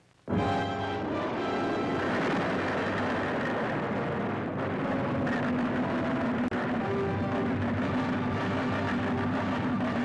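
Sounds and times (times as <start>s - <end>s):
tank engine running: 0.4s - 10.0s.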